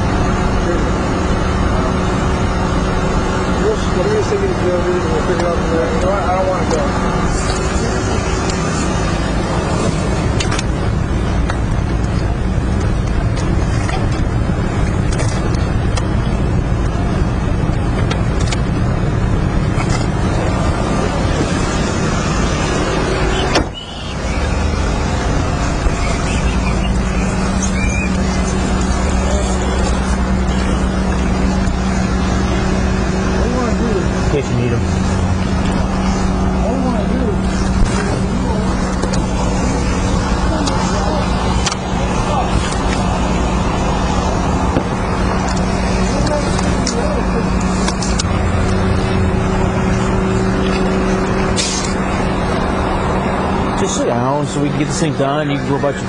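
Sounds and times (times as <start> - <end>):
loud rushing noise: 0.0 - 56.0
low hum: 0.0 - 56.0
faint indistinct voices: 35.6 - 48.4.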